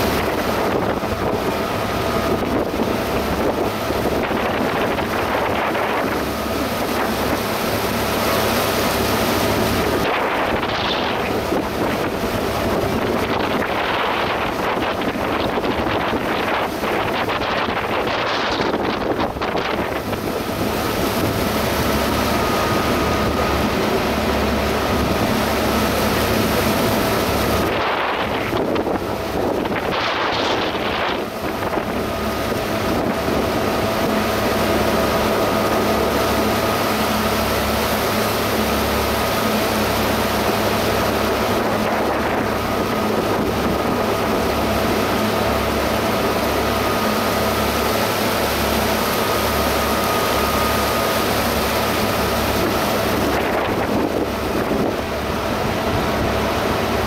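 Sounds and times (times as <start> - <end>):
boat engine hum: 0.0 - 57.0
water rushing in wake: 0.0 - 57.0
wind buffeting microphone: 0.0 - 57.0.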